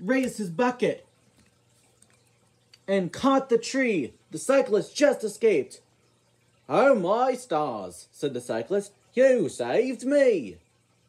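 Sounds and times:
person narrating: 0:00.0 - 0:01.1, 0:02.8 - 0:05.8, 0:06.7 - 0:10.6
faint low hum: 0:00.0 - 0:11.0.

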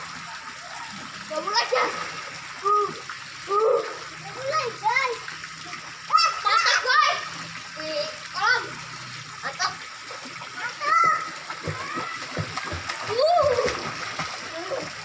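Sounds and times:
pool water splashing: 0:00.0 - 0:15.0
children calling out: 0:06.1 - 0:07.4, 0:10.6 - 0:12.4.

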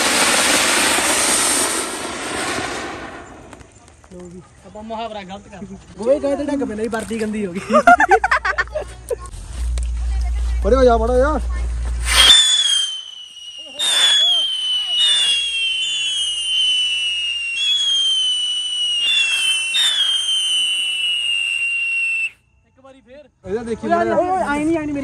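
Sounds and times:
whistling firework shrill whistles: 0:00.0 - 0:03.8, 0:12.0 - 0:22.4.

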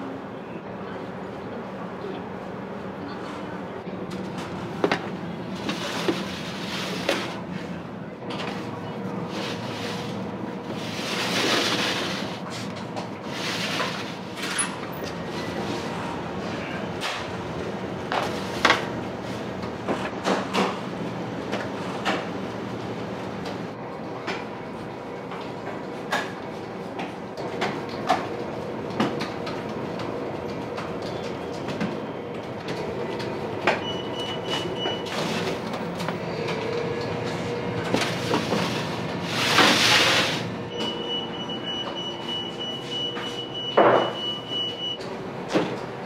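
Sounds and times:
kitchen machinery hum: 0:00.0 - 0:46.0.

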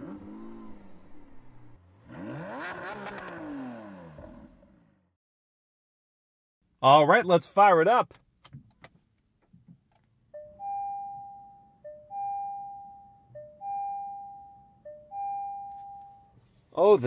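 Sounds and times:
two-note car start-up chime: 0:10.4 - 0:16.4.

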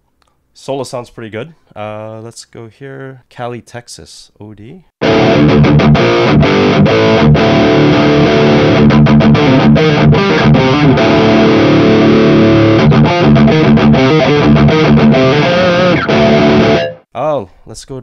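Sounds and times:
distorted electric guitar riff: 0:05.0 - 0:17.1.

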